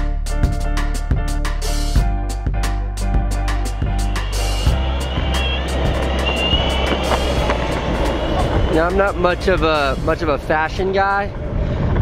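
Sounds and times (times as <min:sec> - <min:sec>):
music with steady drum beat: 0:00.0 - 0:10.1
street traffic: 0:03.5 - 0:11.6
skateboard wheels rolling on asphalt: 0:04.3 - 0:12.0.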